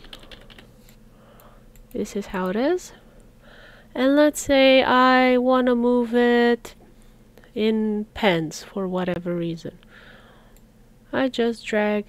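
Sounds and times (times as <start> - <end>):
computer input clicking and tapping: 0.0 - 0.6.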